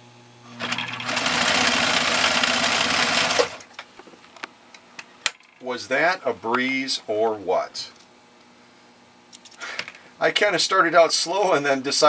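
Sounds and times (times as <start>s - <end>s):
sewing machine stitching leather: 0.6s - 3.7s.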